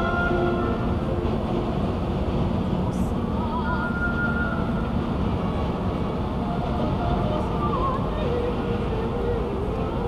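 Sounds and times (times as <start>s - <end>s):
car road and engine noise: 0.0s - 10.0s.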